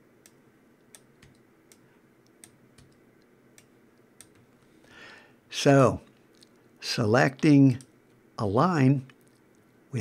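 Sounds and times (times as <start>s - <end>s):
keyboard and mouse clicks: 0.2s - 4.5s.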